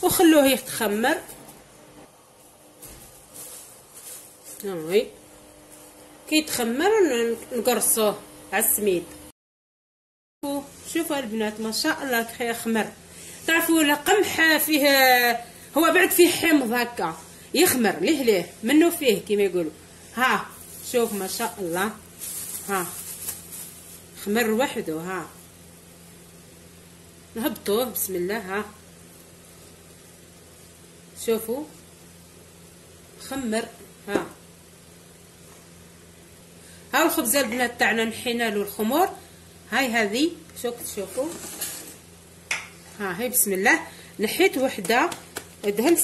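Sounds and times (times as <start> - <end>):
plastic sheet and towel rustling: 0.3 - 6.1, 20.0 - 25.6
low steady hum: 10.4 - 46.0.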